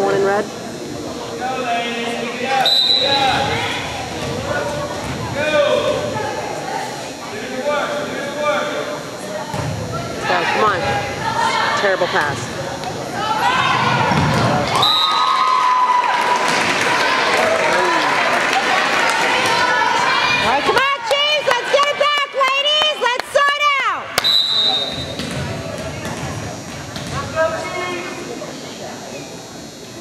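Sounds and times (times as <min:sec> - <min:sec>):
referee's whistle: 0:02.6 - 0:03.5, 0:14.7 - 0:15.4, 0:24.2 - 0:25.2
crowd cheering and shouting: 0:13.1 - 0:24.2.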